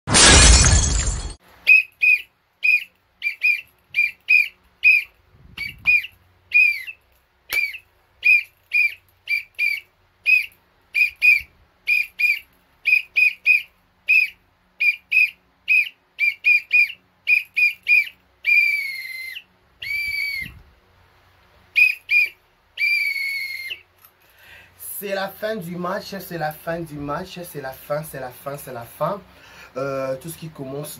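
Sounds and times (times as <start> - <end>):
loud crash-like noise burst: 0.1 - 1.4
plastic whistle blasts: 1.6 - 20.6, 21.8 - 23.9.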